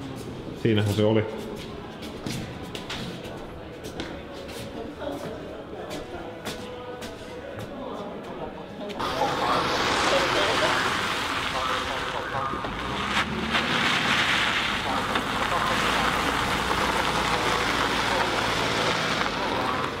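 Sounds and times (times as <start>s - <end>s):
vehicle engine idling: 9.0s - 20.0s.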